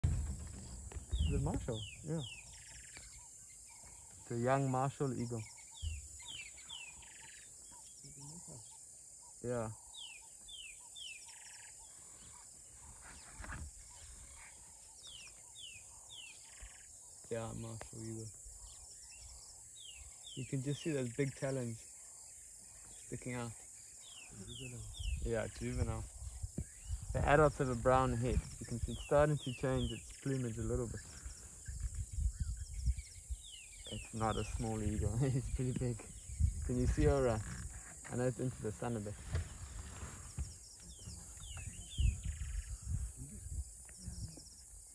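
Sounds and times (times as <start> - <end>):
low rumble with thumps: 0.0 - 2.5, 30.6 - 44.5
small bird singing: 0.3 - 44.9.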